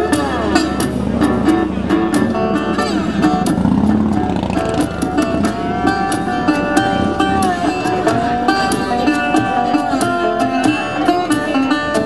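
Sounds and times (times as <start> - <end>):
fingerpicked acoustic guitar: 0.0 - 12.0
harmonica bending notes: 0.0 - 12.0.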